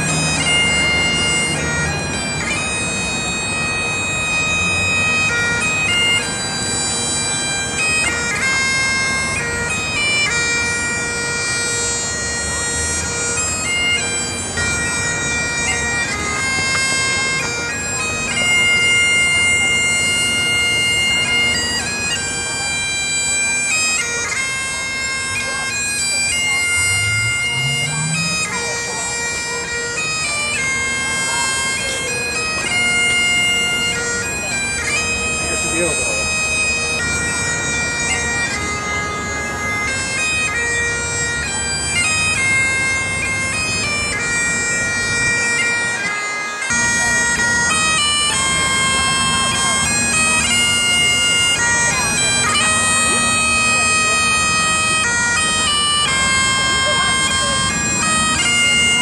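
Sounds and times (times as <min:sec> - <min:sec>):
bagpipe chanter melody: 0:00.0 - 0:59.0
bagpipe drone: 0:00.0 - 0:59.0.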